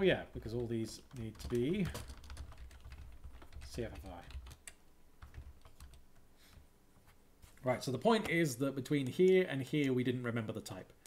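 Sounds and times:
typing on computer keyboard: 0:00.5 - 0:06.0.

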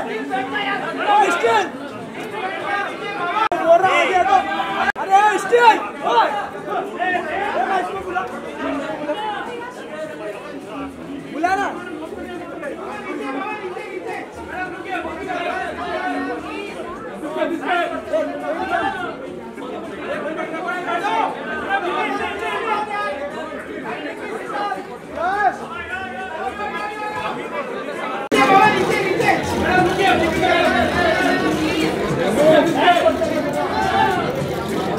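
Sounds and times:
crowd chatter: 0:00.0 - 0:34.9.

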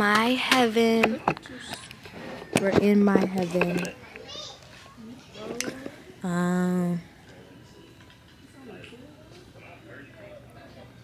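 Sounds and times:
faint voices talking: 0:00.2 - 0:11.0.

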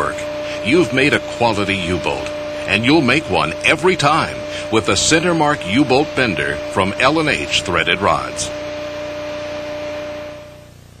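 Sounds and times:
steady hiss: 0:00.0 - 0:10.8
faint hum: 0:00.0 - 0:11.0.

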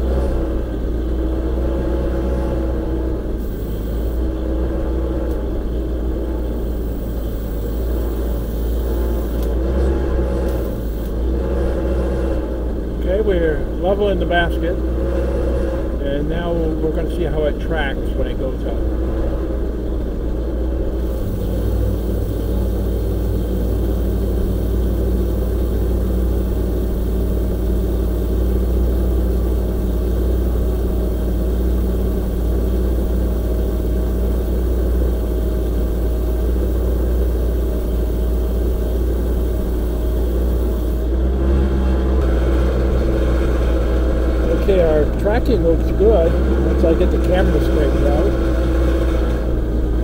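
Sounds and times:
engine running: 0:00.0 - 0:50.0
hydraulic whine: 0:00.0 - 0:50.0.

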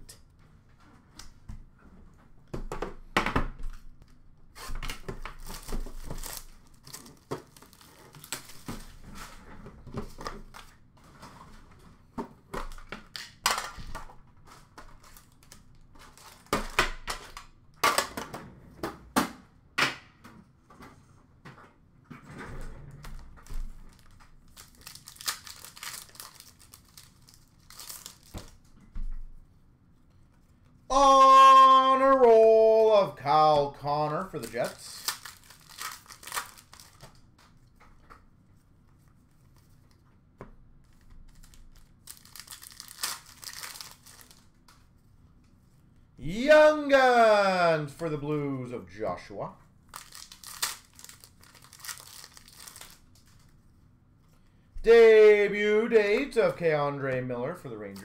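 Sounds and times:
card packs tearing open: 0:05.3 - 0:09.0, 0:15.0 - 0:16.5, 0:23.9 - 0:28.5, 0:34.2 - 0:37.0, 0:41.3 - 0:44.5, 0:49.9 - 0:53.2
wrappers crinkling: 0:05.4 - 0:09.0, 0:23.9 - 0:28.6, 0:34.2 - 0:37.1, 0:41.0 - 0:44.5, 0:49.9 - 0:53.6.

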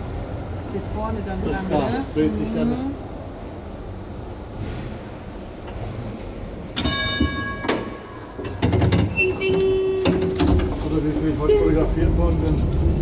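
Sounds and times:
tram wheels rumbling on rails: 0:00.0 - 0:13.0.

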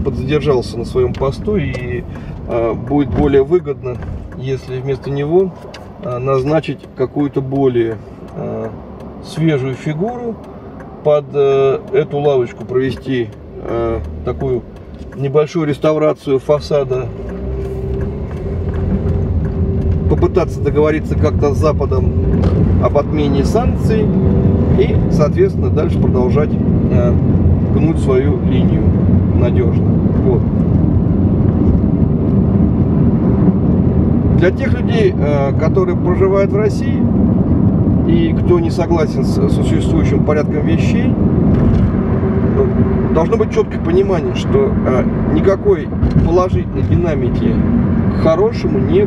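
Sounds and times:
car engine and road rumble: 0:00.0 - 0:49.0.

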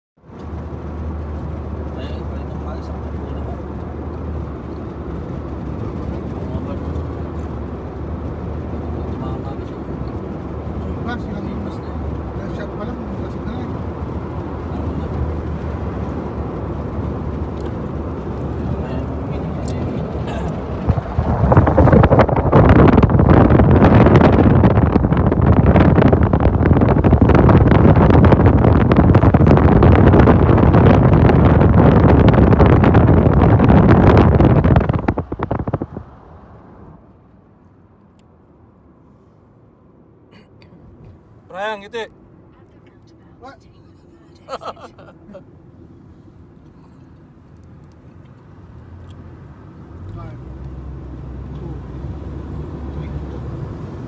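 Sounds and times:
car engine and road noise: 0:00.2 - 0:54.0
wind and tyre noise through window: 0:00.2 - 0:54.0.

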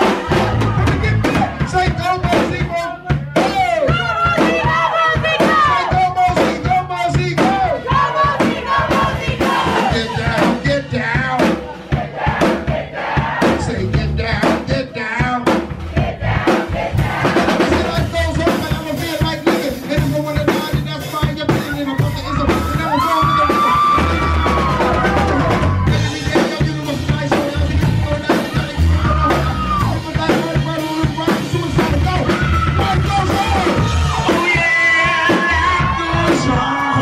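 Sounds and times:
crowd voices: 0:00.0 - 0:14.0, 0:15.8 - 0:37.0
drum kit: 0:00.0 - 0:37.0
live rock band: 0:00.0 - 0:37.0.

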